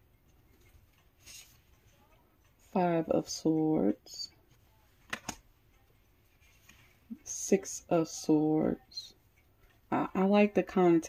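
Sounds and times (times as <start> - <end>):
cards knocking together: 5.0 - 5.4.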